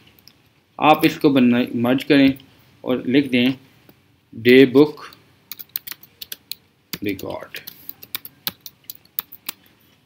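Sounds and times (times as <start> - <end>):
computer keyboard typing: 5.5 - 9.6.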